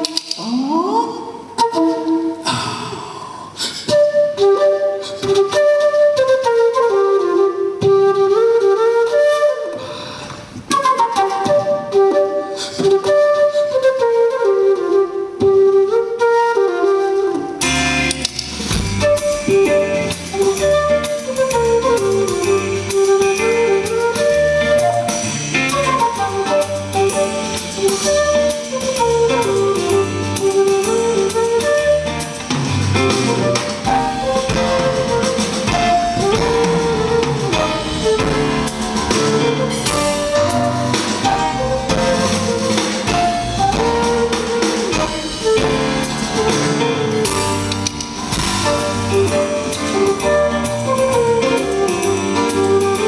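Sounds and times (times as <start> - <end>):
flute melody: 0.0 - 2.8, 3.7 - 53.0
drums: 0.0 - 53.0
electric guitar: 17.4 - 53.0
bass: 17.6 - 53.0.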